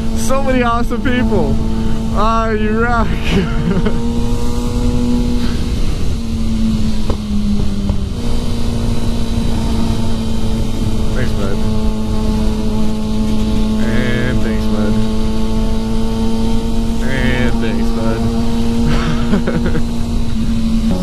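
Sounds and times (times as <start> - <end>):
wind rushing over microphone: 0.0 - 19.2
motorcycle engine running: 0.0 - 21.0.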